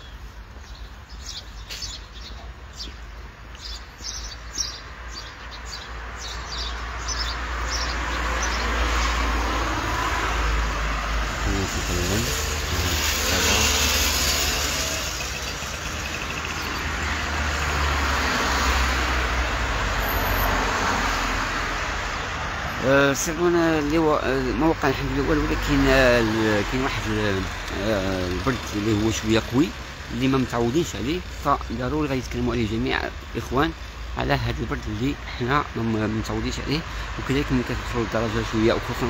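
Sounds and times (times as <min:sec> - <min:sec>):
birds chirping: 0:00.0 - 0:39.0
cars passing: 0:00.1 - 0:39.0.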